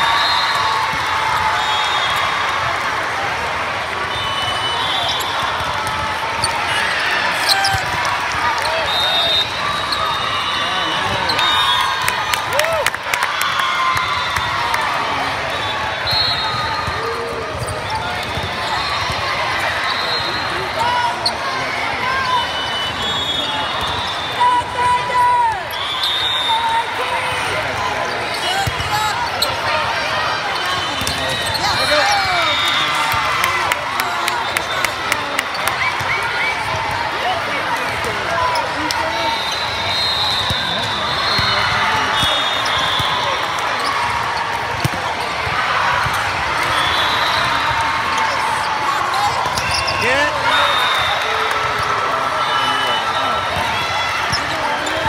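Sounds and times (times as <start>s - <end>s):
referee whistle blasts: 0.0s - 0.8s, 4.1s - 5.7s, 8.6s - 12.1s, 15.5s - 17.0s, 19.8s - 20.9s, 22.2s - 26.8s, 39.0s - 43.9s, 46.6s - 47.8s, 49.2s - 51.4s, 52.4s - 53.5s
many overlapping voices: 0.0s - 55.0s
volleyballs hit and bouncing: 41.3s - 46.7s.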